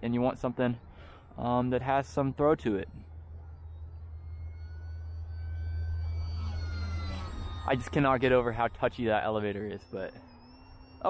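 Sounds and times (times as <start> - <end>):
low steady rumble: 0.0 - 11.0
model plane propeller whine: 0.0 - 11.0.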